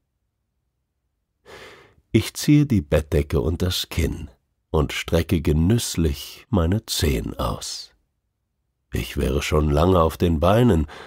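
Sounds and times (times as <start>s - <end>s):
narrator breath: 1.4s - 2.0s.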